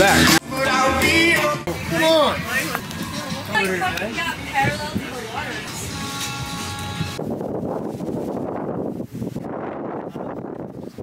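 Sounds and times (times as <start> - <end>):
wind rushing over microphone: 4.4 - 11.0.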